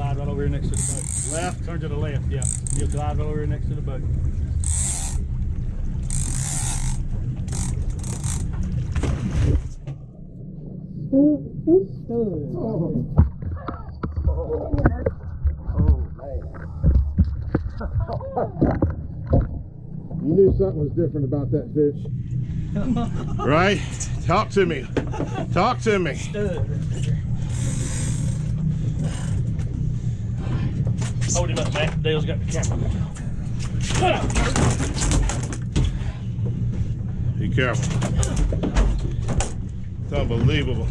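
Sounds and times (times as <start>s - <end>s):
outboard motor idling: 0.0s - 9.0s
boat engine rumble: 0.0s - 40.9s.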